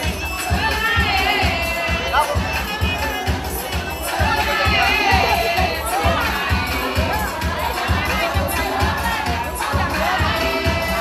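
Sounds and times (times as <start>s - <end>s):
music with steady drum beat: 0.0s - 11.0s
women cheering and ululating: 2.0s - 2.6s, 4.2s - 10.7s.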